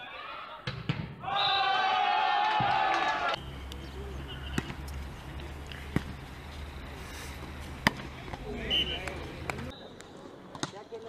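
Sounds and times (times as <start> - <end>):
loud held cry: 1.2 - 3.4
voices: 1.2 - 11.0.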